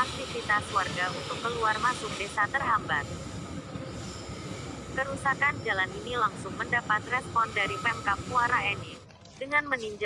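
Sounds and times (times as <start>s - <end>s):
freight train rumbling: 0.0s - 9.0s.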